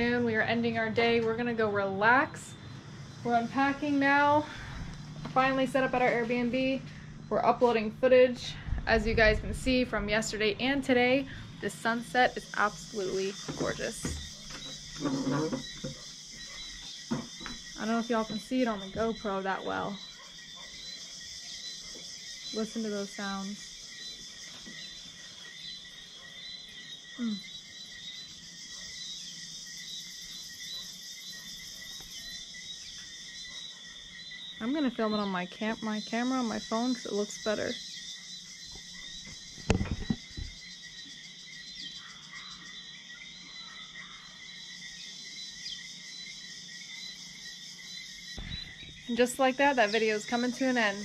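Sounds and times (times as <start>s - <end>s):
crickets and insects trilling: 0.0s - 51.0s
frogs chirping: 0.0s - 51.0s.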